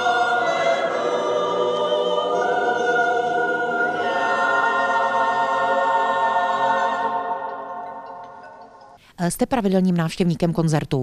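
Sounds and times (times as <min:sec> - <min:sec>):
mixed choir singing: 0:00.0 - 0:08.9.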